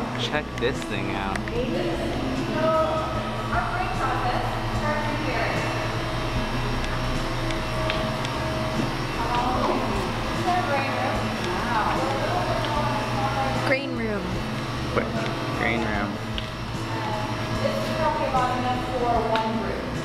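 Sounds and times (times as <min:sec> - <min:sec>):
indistinct voices talking: 0:00.0 - 0:20.0
low mechanical hum: 0:00.0 - 0:20.0.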